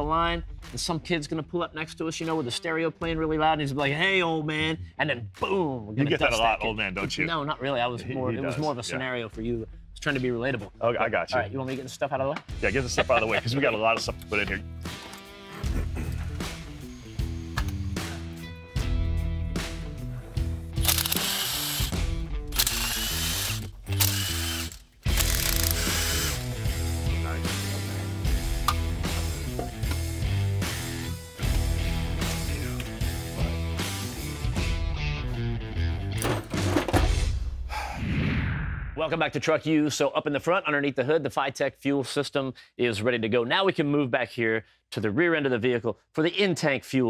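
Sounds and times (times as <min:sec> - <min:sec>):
background music: 0:00.0 - 0:38.0
ratchet wrench clicking: 0:20.8 - 0:26.5.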